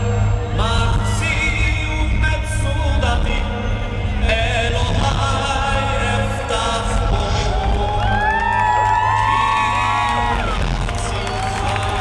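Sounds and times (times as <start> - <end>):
amplified concert music: 0.0 - 12.0
crowd cheering and screaming: 7.4 - 12.0.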